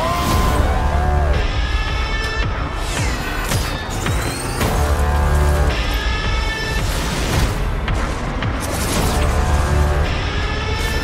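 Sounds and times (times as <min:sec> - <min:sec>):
film trailer music with heavy bass: 0:00.0 - 0:11.0.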